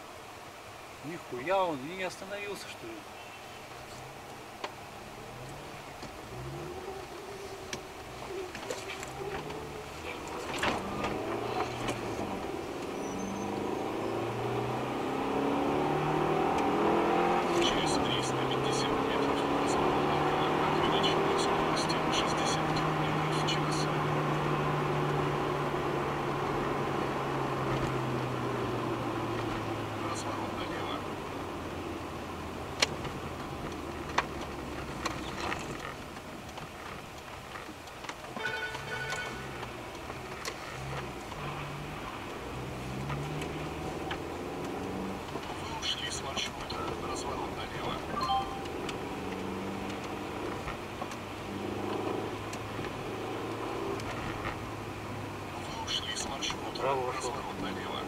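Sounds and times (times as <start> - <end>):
car engine: 0.0 - 58.0
road noise inside a car: 0.0 - 58.0.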